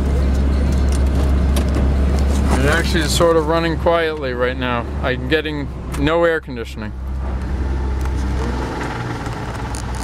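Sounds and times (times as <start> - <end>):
car engine revving: 6.9 - 10.0.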